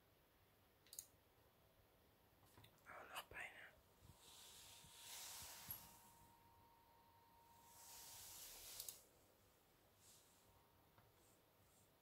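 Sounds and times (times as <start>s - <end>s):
soft mouse clicks: 0.8s - 1.2s, 8.6s - 9.0s
person whispering faintly: 2.8s - 3.8s.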